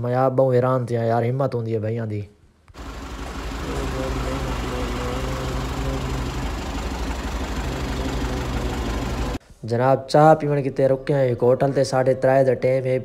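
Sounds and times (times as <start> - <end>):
vehicle engine idling: 2.8 - 9.4.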